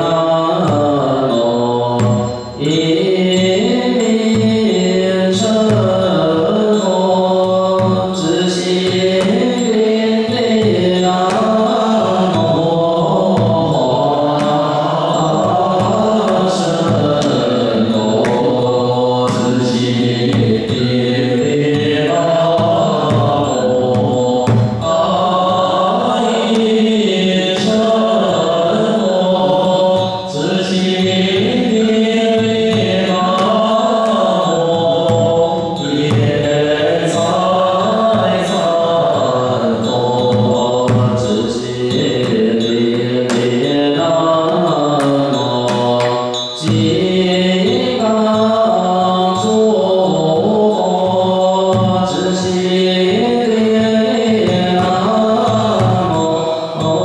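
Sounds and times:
group chanting in unison: 0:00.0 - 0:57.0
drum struck with wooden sticks: 0:00.6 - 0:02.8, 0:03.4 - 0:06.8, 0:07.4 - 0:47.2, 0:50.4 - 0:56.4.

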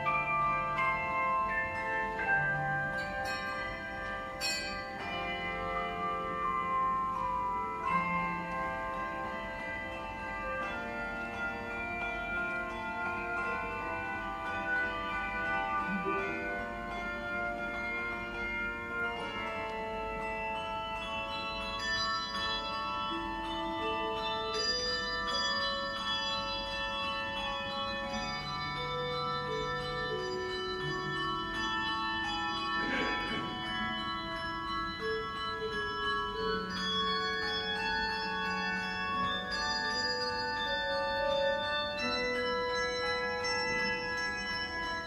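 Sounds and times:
handbells ringing: 0:00.0 - 0:45.0.

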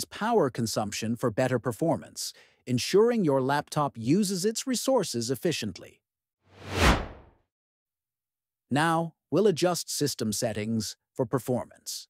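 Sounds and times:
whoosh transition effect: 0:06.6 - 0:07.3.

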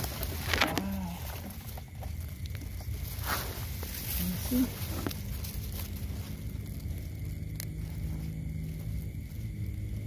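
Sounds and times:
dry grass and leaves rustling: 0:00.0 - 0:10.0
steady low rumble: 0:00.0 - 0:10.0.

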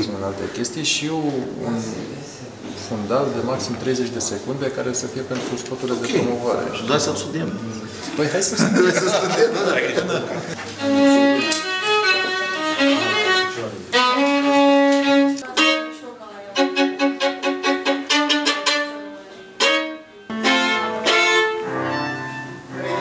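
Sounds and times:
solo violin bowed: 0:10.7 - 0:23.0.

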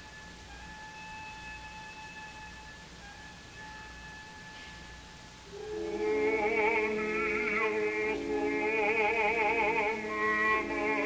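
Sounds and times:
recording hiss and hum: 0:00.0 - 0:11.0
steady high tone: 0:00.0 - 0:11.0.

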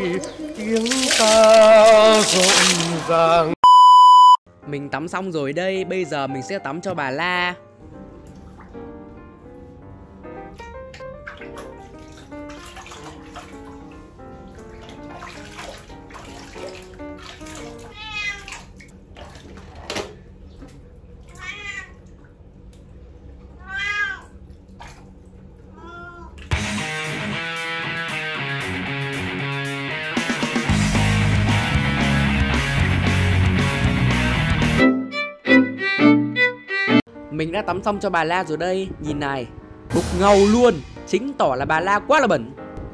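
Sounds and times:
background music: 0:04.5 - 0:17.8, 0:26.5 - 0:42.9
cat meowing: 0:17.8 - 0:18.7, 0:21.2 - 0:22.1, 0:23.5 - 0:24.4, 0:25.7 - 0:26.4.

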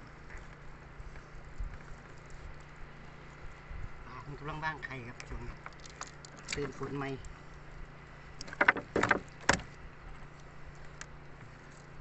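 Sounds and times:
low steady hum: 0:00.0 - 0:12.0
knocks on wooden boat hull: 0:08.4 - 0:09.7.

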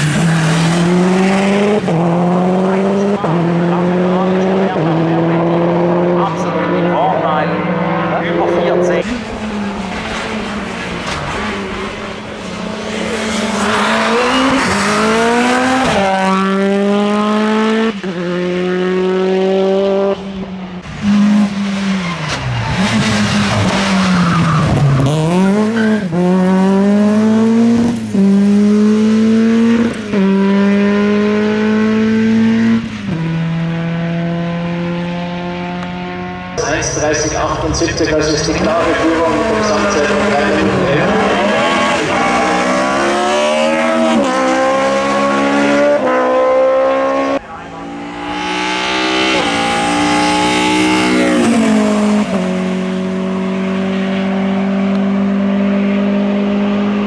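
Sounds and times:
race car engines at full throttle: 0:00.0 - 0:57.0.

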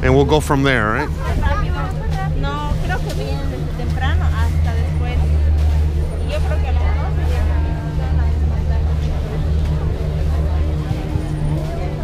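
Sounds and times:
crowd chatter: 0:00.0 - 0:12.0
loud low rumble: 0:00.0 - 0:12.0.

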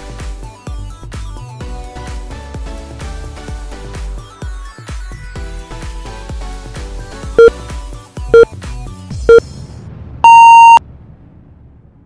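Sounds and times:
long higher beep: 0:10.2 - 0:10.8
short low beeps: 0:10.2 - 0:10.8.

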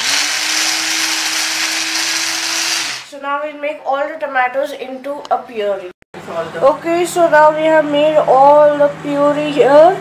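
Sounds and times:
hand blender motor running: 0:00.0 - 0:03.1.

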